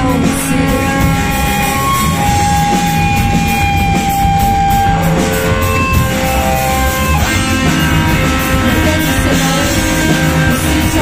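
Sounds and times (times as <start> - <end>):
electric guitar: 0.0 - 11.0
rock drumming: 0.0 - 11.0.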